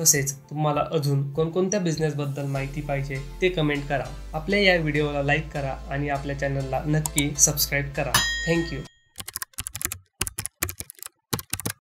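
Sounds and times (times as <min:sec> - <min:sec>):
keyboard keystroke clicks: 0:09.2 - 0:11.8.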